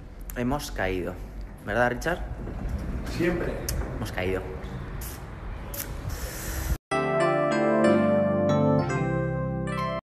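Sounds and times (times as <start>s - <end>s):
phone recording while walking: 1.3s - 5.2s.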